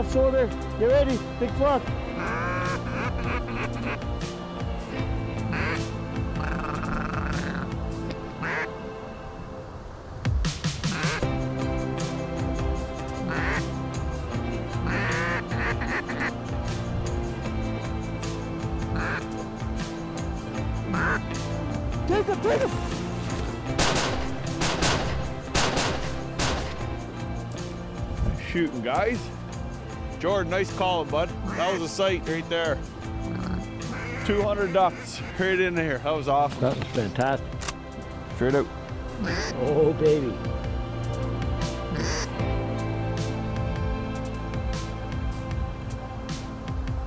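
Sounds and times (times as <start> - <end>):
duck call quacks: 2.2 - 4.1, 5.5 - 7.7, 8.4 - 8.7, 10.8 - 11.2, 13.2 - 13.7, 14.8 - 16.3, 19.0 - 19.2, 20.9 - 21.2, 31.5 - 31.7, 33.3 - 35.4, 39.2 - 39.6, 41.9 - 42.4
music with low notes: 10.2 - 47.0
shotgun blasts: 23.8 - 26.8.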